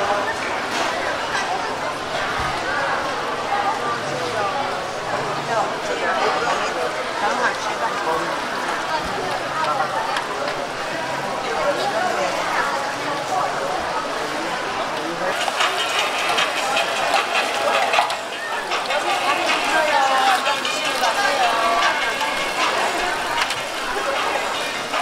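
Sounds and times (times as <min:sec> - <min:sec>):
people talking: 0:00.0 - 0:25.0
oil sizzling on a griddle: 0:15.3 - 0:25.0.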